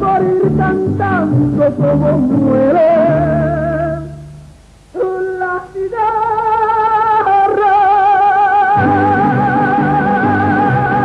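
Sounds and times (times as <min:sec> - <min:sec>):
woman singing with vibrato: 0:00.0 - 0:04.3, 0:05.0 - 0:11.0.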